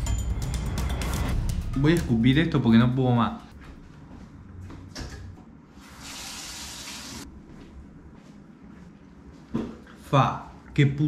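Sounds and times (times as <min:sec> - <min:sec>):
water tap running: 0:05.8 - 0:07.3.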